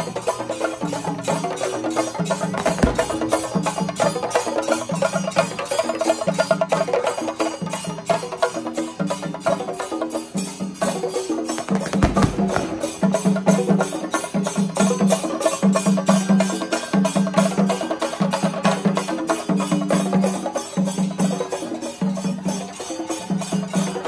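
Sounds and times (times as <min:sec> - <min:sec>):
barrel drums playing: 0:02.5 - 0:04.0, 0:11.6 - 0:14.1
heavy drum thump: 0:02.6 - 0:03.7, 0:11.6 - 0:13.6.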